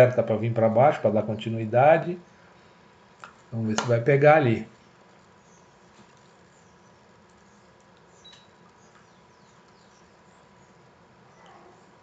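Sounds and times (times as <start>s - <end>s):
faint high chirps: 4.8s - 12.0s.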